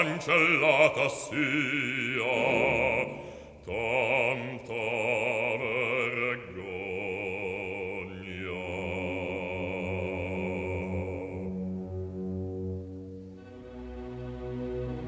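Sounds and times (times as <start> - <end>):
operatic bass voice singing: 0.0 - 11.8
orchestral chords: 1.5 - 3.6, 8.7 - 15.0.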